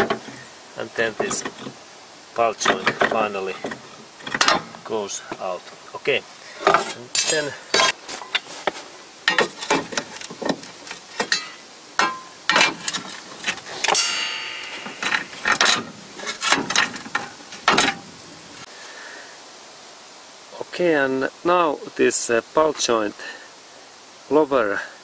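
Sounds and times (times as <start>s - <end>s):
ringing metal clang: 11.2s - 12.8s, 13.9s - 15.9s
metallic clinks of hand tools: 13.9s - 15.8s.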